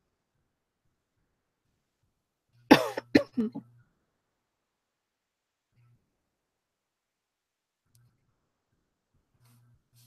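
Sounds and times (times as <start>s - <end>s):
woman coughing: 2.7s - 3.6s.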